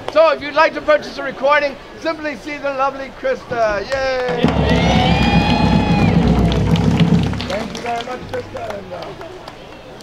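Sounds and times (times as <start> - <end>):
crowd cheering: 4.1 - 10.0
drums rolling: 4.3 - 8.3.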